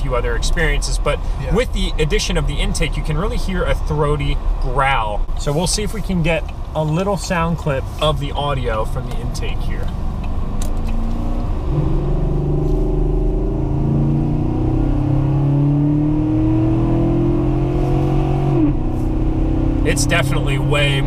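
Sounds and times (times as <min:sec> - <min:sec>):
truck engine accelerating: 0:09.0 - 0:21.0.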